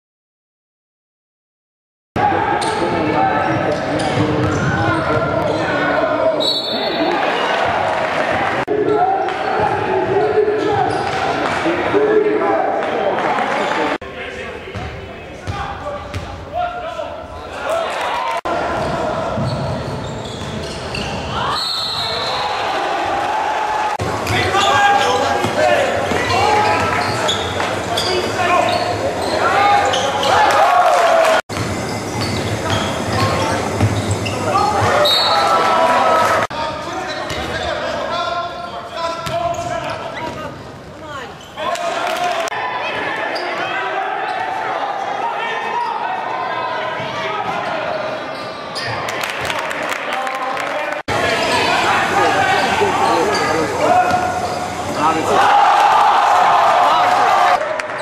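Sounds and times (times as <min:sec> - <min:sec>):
crowd voices echoing: 0:02.2 - 0:58.0.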